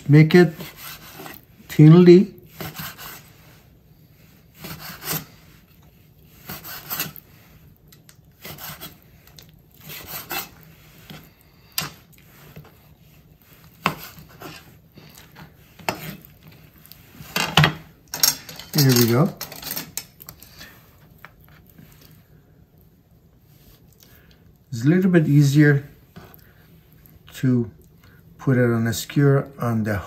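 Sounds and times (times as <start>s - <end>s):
knife slicing meat on wooden board: 2.6s - 3.2s, 4.6s - 5.3s, 6.4s - 7.2s, 8.4s - 9.0s, 9.8s - 11.2s, 13.6s - 14.7s.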